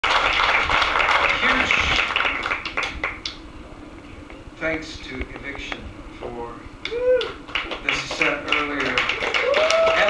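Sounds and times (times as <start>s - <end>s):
audience applauding: 0.0s - 3.3s, 7.2s - 10.0s.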